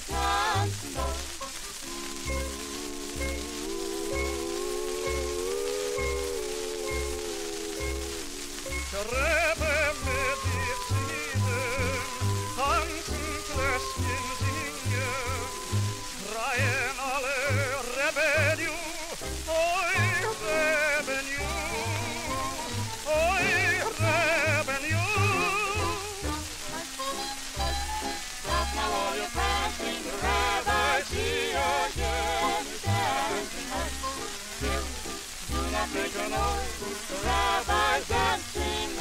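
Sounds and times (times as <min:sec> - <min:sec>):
orchestra playing folk song: 0:00.0 - 0:39.0
record surface hiss: 0:00.0 - 0:39.0.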